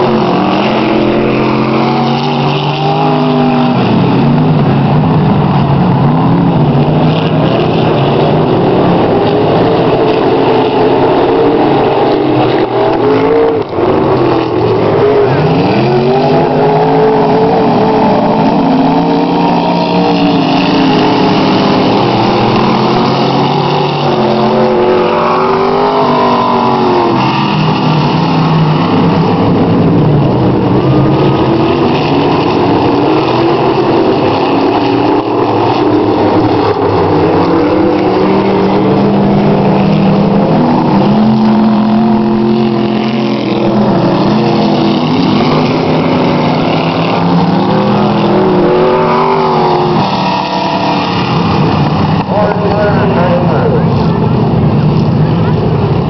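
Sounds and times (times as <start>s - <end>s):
race car engines revving: 0.0s - 56.0s.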